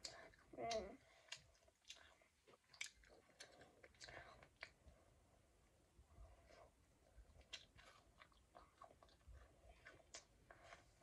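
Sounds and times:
mouth clicks and smacks: 0:00.0 - 0:04.8
child chewing: 0:00.0 - 0:05.2, 0:06.2 - 0:11.0.

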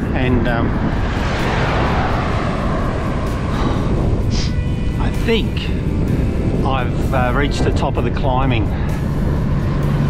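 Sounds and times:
road and traffic noise: 0:00.0 - 0:10.0
wind buffeting microphone: 0:00.0 - 0:10.0.

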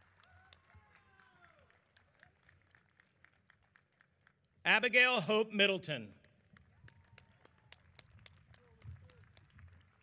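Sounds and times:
faint scattered handclaps: 0:00.0 - 0:04.6, 0:06.2 - 0:10.0.

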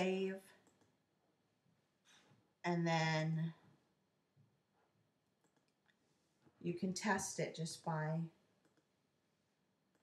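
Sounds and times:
computer mouse clicks: 0:00.6 - 0:01.0, 0:05.4 - 0:06.0, 0:08.6 - 0:08.9.

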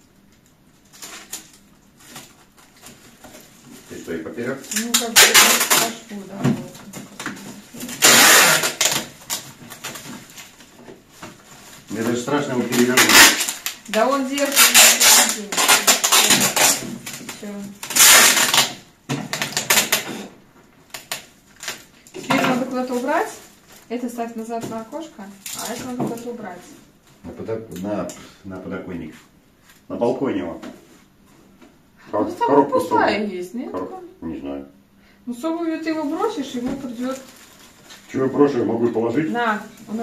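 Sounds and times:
packing tape ripping: 0:00.8 - 0:03.0, 0:04.7 - 0:06.1, 0:07.2 - 0:10.7, 0:12.5 - 0:20.3, 0:20.9 - 0:22.2, 0:25.4 - 0:26.4
plastic bag crinkling: 0:11.3 - 0:20.0, 0:35.9 - 0:40.0.

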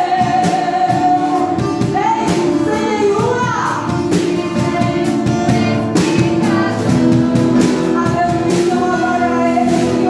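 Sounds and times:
drum kit with cymbals: 0:00.0 - 0:10.0
strummed acoustic guitar: 0:00.0 - 0:10.0
women singing gospel: 0:00.0 - 0:10.0.

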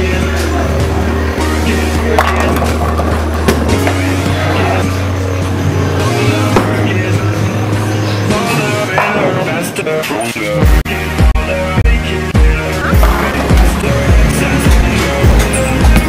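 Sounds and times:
background music with bass line: 0:00.0 - 0:16.0.

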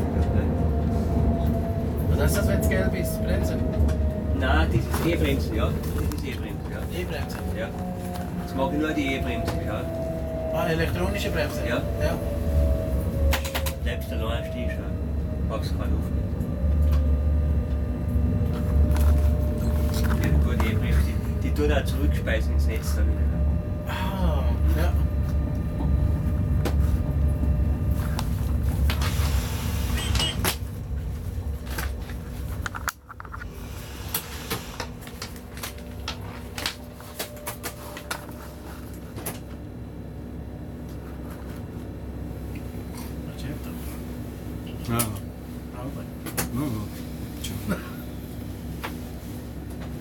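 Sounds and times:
locomotive cab rumble: 0:00.0 - 0:39.6.

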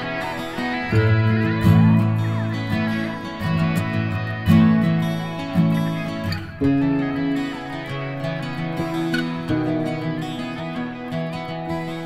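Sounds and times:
acoustic guitar chords: 0:00.0 - 0:12.0.

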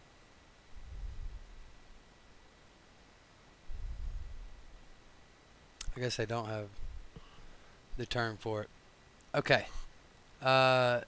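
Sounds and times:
low rumble on microphone: 0:00.7 - 0:02.0, 0:03.6 - 0:05.0, 0:06.7 - 0:08.0.

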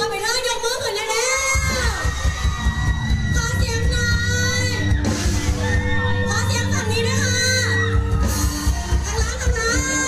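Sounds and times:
crowd shouting and cheering: 0:00.0 - 0:10.0
live party band music: 0:00.0 - 0:10.0.

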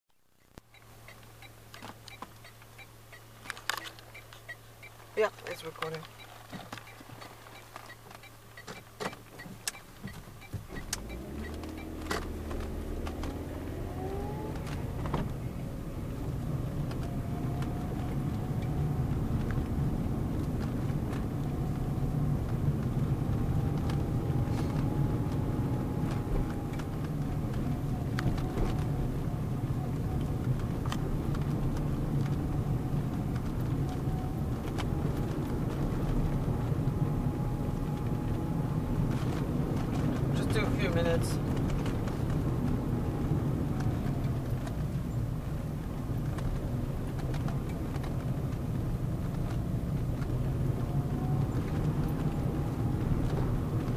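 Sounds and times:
car engine and tyre noise: 0:00.1 - 0:53.9
clicks inside car: 0:00.4 - 0:15.5, 0:16.8 - 0:53.9.

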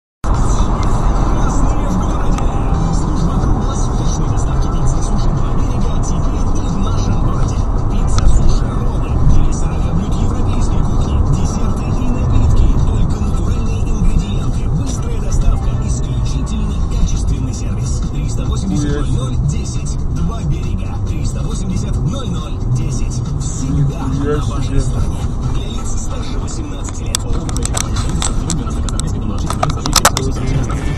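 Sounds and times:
car road and engine rumble: 0:00.2 - 0:30.9
music playing: 0:00.2 - 0:30.9
voice: 0:00.2 - 0:30.9.

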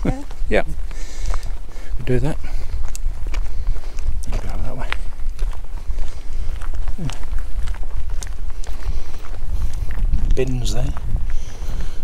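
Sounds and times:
footsteps on tarmac: 0:00.0 - 0:12.0
wind rumble on microphone: 0:00.0 - 0:12.0.

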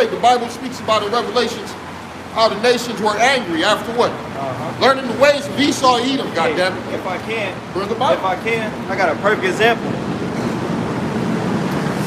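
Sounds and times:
city street background noise: 0:00.0 - 0:12.0.

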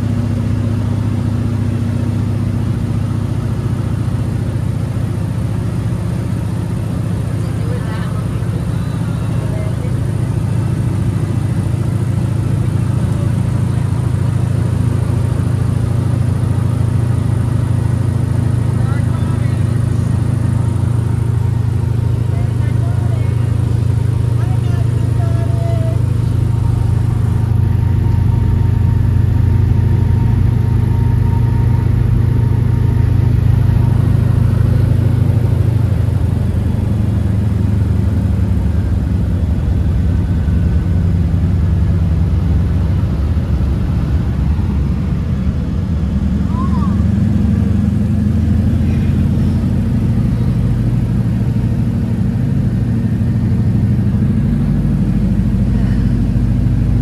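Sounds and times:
propeller plane engine droning: 0:00.0 - 0:57.0.

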